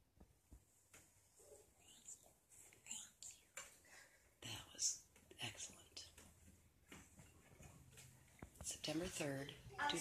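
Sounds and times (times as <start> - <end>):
person whispering: 1.4 - 6.2.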